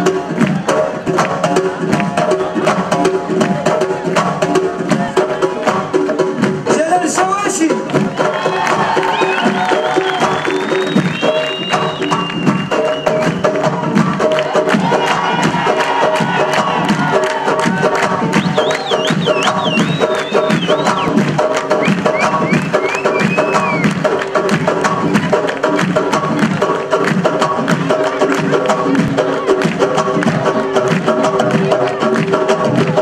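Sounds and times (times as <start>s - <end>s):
crowd cheering: 0.0s - 33.0s
frame drums beating fast rhythm: 0.0s - 33.0s.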